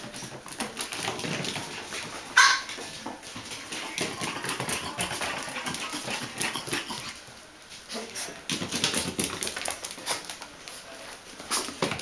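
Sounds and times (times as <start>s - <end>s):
soft puppy noises: 3.4s - 8.4s.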